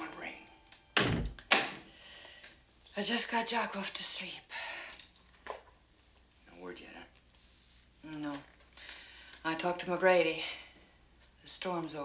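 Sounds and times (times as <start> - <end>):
wooden door thunking shut: 1.0 - 1.7.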